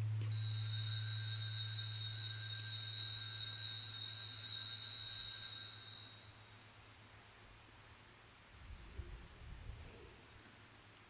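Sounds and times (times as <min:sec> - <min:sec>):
altar bell ringing: 0:00.0 - 0:06.6
low steady hum: 0:00.0 - 0:10.8.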